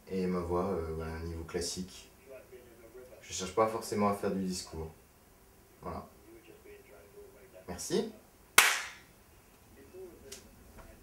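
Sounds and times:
sharp smack in small room: 0:08.6 - 0:09.1.

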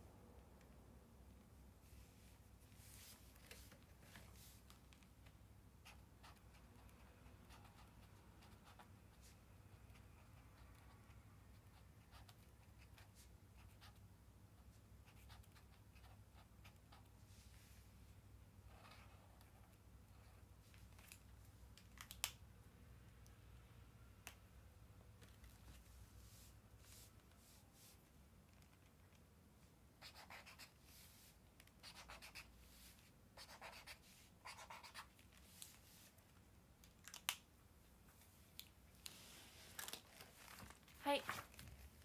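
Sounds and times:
pen scratching on paper: 0:05.8 - 0:10.9, 0:30.0 - 0:31.1, 0:31.8 - 0:32.5, 0:33.4 - 0:35.1
faint pen scratching on paper: 0:30.0 - 0:36.1.

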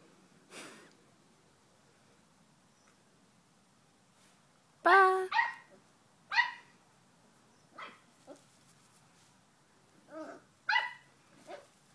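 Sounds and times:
dog yapping: 0:05.3 - 0:05.7, 0:06.3 - 0:06.7, 0:07.8 - 0:08.4, 0:10.1 - 0:11.7.

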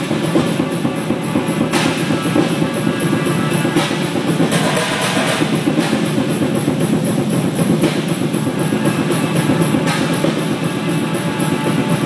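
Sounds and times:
cymbal crashes: 0:00.0 - 0:12.0
fast drumming: 0:00.0 - 0:12.0.

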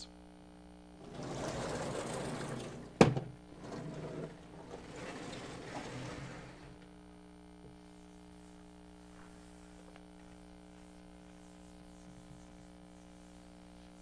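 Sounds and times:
panel scraping on blackboard: 0:01.0 - 0:06.8.

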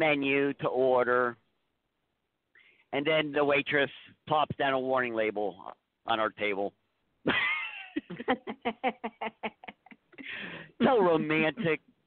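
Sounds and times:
person laughing: 0:07.3 - 0:11.6.

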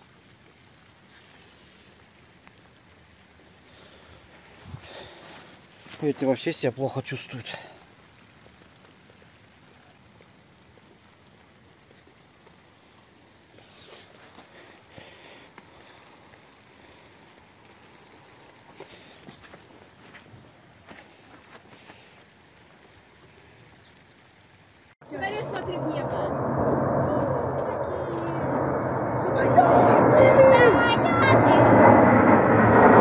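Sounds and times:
light rain patter: 0:00.0 - 0:31.2.

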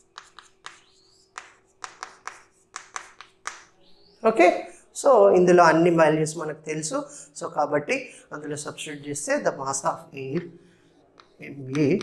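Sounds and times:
chalk tapping on chalkboard: 0:00.0 - 0:04.0, 0:10.9 - 0:12.0.

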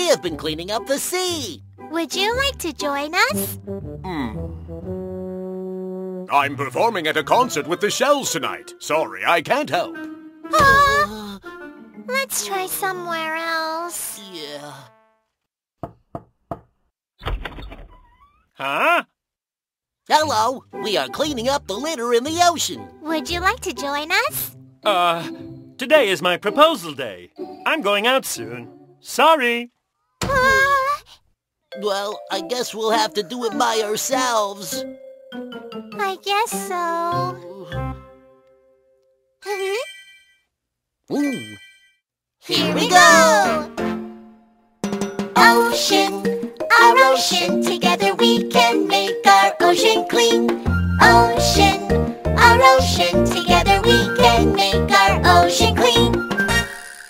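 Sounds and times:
children's song music: 0:00.0 - 0:15.0, 0:20.1 - 0:30.1, 0:31.7 - 0:39.0, 0:42.4 - 0:56.8
knocks on a door: 0:15.8 - 0:16.8.

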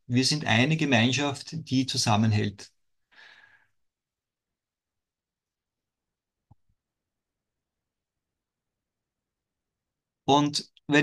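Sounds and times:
man talking: 0:00.0 - 0:02.8, 0:10.3 - 0:11.0
man breathing: 0:03.0 - 0:03.8.

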